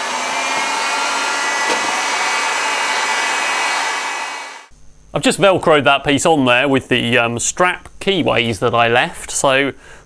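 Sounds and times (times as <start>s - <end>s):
hot air gun blowing with fan whine: 0.0s - 4.7s.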